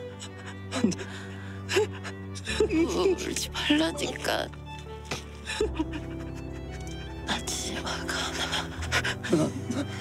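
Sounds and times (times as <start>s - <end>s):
slow music score: 0.0s - 10.0s
person sobbing and gasping: 0.3s - 2.8s, 5.4s - 6.8s, 8.4s - 10.0s.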